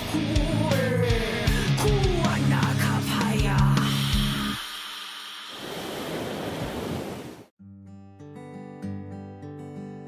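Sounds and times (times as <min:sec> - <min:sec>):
ocean waves rushing: 0:04.6 - 0:07.5
acoustic guitar strumming: 0:07.6 - 0:10.0.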